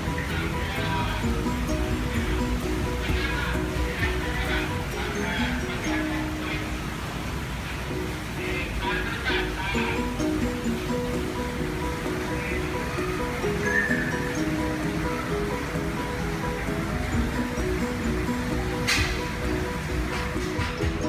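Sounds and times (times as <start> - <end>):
low hiss: 0.0 - 21.0
melody of short notes: 0.0 - 21.0.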